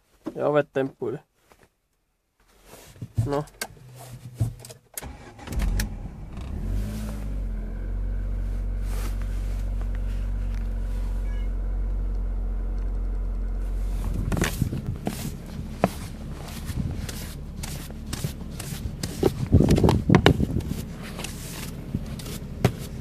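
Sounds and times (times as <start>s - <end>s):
car engine starting and idling: 3.3s - 23.0s.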